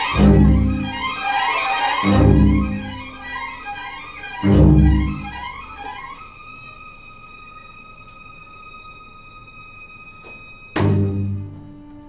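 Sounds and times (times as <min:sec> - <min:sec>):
string orchestra holding high note: 0:00.0 - 0:07.4.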